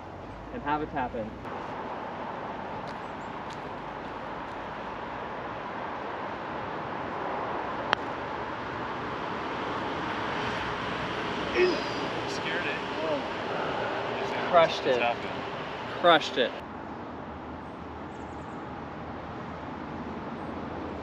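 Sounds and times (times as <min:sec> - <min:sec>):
steady rushing noise: 0:01.4 - 0:16.7.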